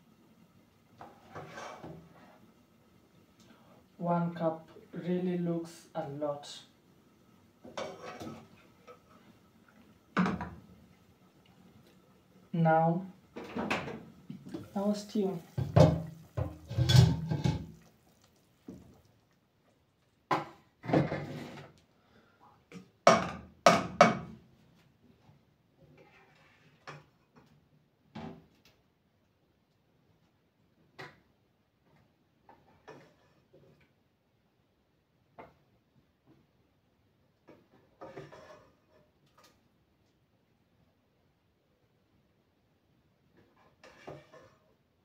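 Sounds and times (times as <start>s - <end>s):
cookware and utensil clattering: 7.7s - 9.1s, 15.4s - 17.8s, 37.5s - 39.0s, 43.6s - 44.6s
kitchenware clinking: 15.5s - 17.7s.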